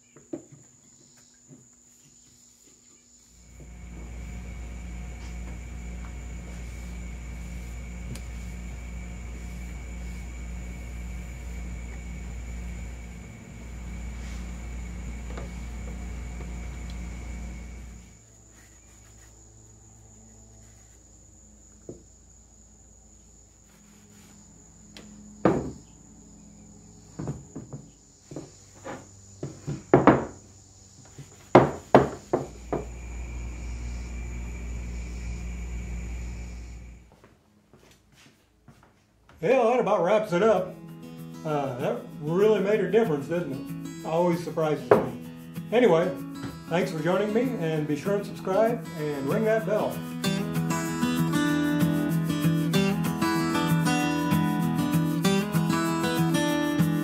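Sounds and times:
mechanical hum with high whine: 0:00.0 - 0:37.3.

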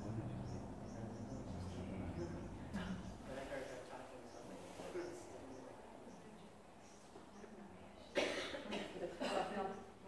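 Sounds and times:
person coughing: 0:08.2 - 0:09.5.

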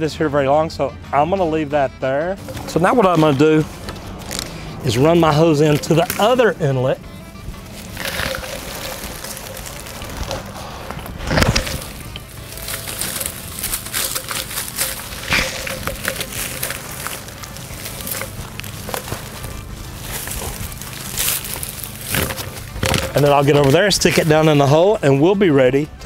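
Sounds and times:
background music: 0:00.0 - 0:26.0
rustling dry leaves and branches: 0:02.4 - 0:26.0.

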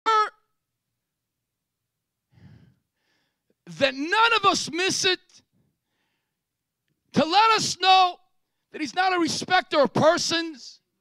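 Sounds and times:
man shouting into microphone: 0:00.0 - 0:00.5, 0:03.7 - 0:05.4, 0:07.1 - 0:10.8.

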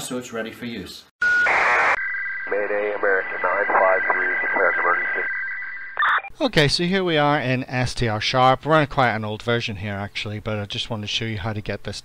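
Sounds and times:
steady whistle tones: 0:01.2 - 0:06.2
voice over tinny two-way radio: 0:01.5 - 0:05.3.

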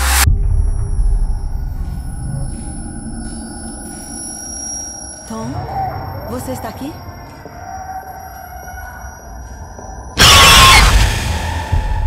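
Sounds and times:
eerie drone with high tones: 0:00.0 - 0:12.0.

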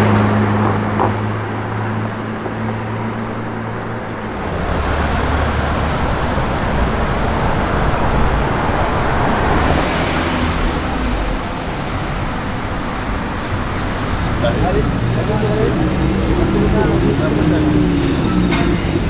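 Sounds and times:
street traffic: 0:00.0 - 0:19.0
vehicle passing: 0:00.0 - 0:19.0.

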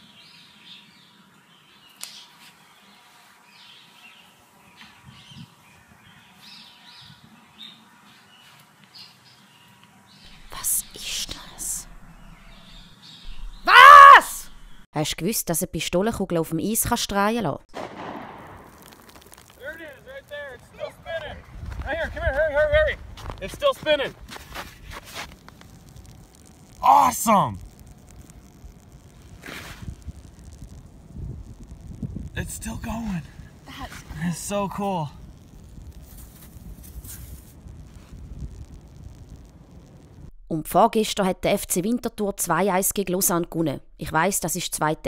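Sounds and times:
wind on microphone: 0:05.0 - 0:06.2, 0:20.6 - 0:23.4, 0:28.4 - 0:34.3, 0:35.1 - 0:40.3
pistol shot on ice: 0:17.7 - 0:19.4.

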